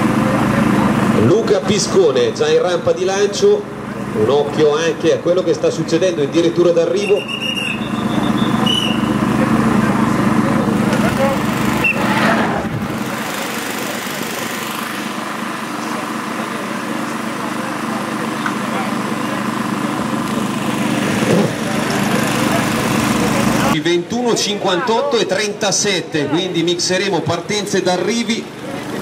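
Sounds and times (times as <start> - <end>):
people talking: 0.0 - 7.4, 8.0 - 11.9, 15.6 - 29.0
car engine humming: 0.0 - 23.8, 27.9 - 29.0.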